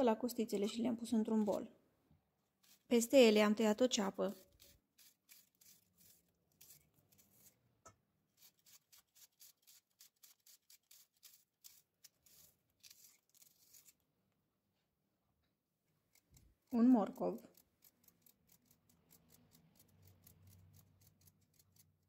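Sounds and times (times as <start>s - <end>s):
serrated knife slicing onion: 2.6s - 7.6s, 8.3s - 14.0s, 16.1s - 22.0s.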